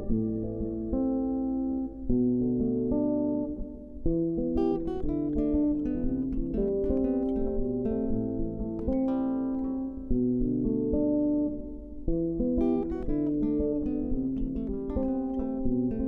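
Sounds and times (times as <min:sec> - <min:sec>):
acoustic guitar chords: 0:00.0 - 0:16.0.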